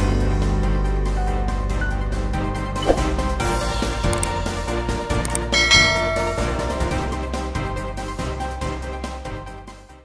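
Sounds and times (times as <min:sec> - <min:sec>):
background music: 0:00.0 - 0:10.0
small clicks: 0:04.1 - 0:04.4, 0:05.2 - 0:05.5
bright bell-like chime: 0:05.6 - 0:07.2.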